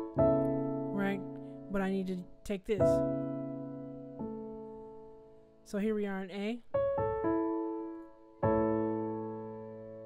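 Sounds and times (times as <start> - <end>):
piano chord ringing: 0.0 - 5.7, 6.7 - 10.0.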